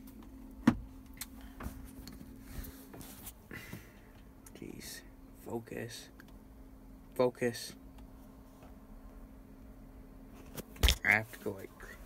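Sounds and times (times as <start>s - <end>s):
low hum in tractor cab: 0.0s - 12.0s.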